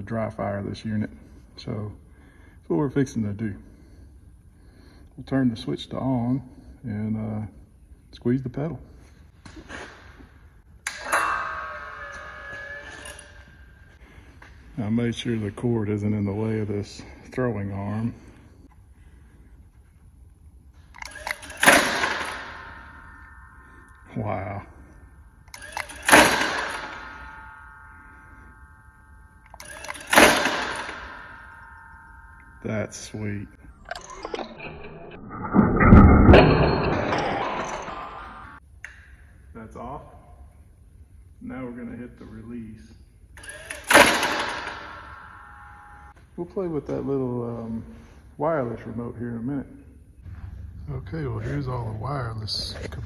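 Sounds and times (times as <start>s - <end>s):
metallic ringing: 10.8s - 19.4s, 21.0s - 38.6s, 42.8s - 46.2s
loud metallic clank: 21.0s - 24.8s, 25.5s - 38.6s, 43.4s - 46.2s.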